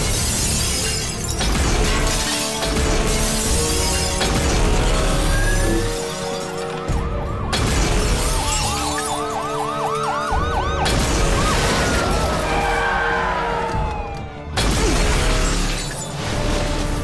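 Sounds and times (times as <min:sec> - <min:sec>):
dramatic soundtrack music: 0:00.0 - 0:17.0
police siren yelping: 0:05.2 - 0:14.6.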